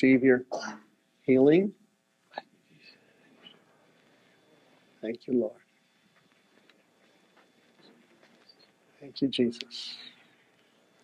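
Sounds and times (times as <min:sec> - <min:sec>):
faint soft sounds: 0:00.1 - 0:11.0
throat hiccup catch: 0:00.5 - 0:00.9.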